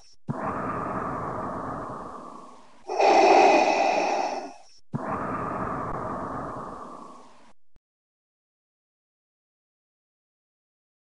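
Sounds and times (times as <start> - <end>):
mechanical respirator breathing: 0.0 - 7.5.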